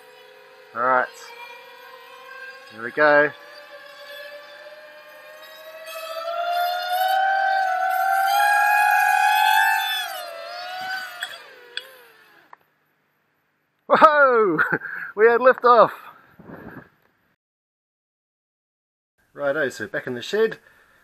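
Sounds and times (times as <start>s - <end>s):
drone motors whining: 0.0s - 12.6s.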